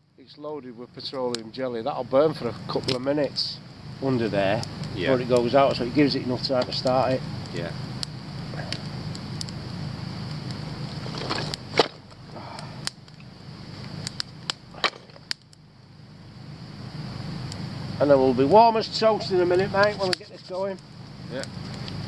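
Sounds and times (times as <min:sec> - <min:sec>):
campfire crackling: 0:00.0 - 0:22.0
steady low hum: 0:00.0 - 0:22.0.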